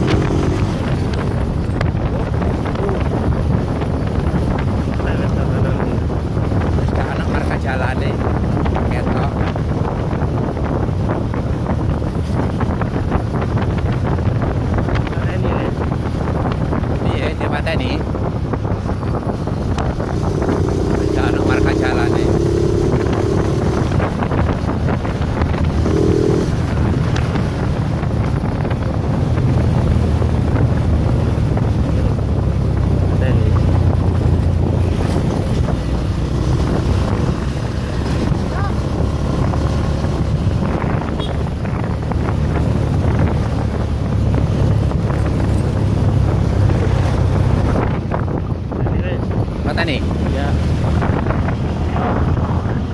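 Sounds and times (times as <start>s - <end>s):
motorcycle road and engine noise: 0.0s - 52.9s
wind buffeting microphone: 0.0s - 52.9s.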